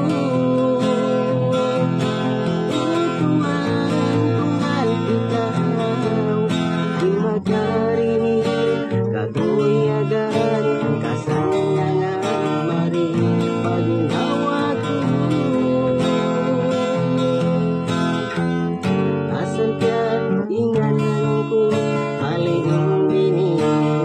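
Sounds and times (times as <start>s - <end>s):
acoustic guitar strumming chords: 0.0s - 24.0s.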